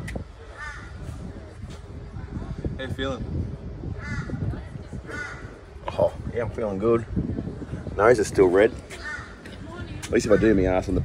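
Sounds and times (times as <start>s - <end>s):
crow cawing: 0.6s - 1.0s, 4.0s - 4.4s, 5.1s - 5.6s, 9.0s - 9.5s.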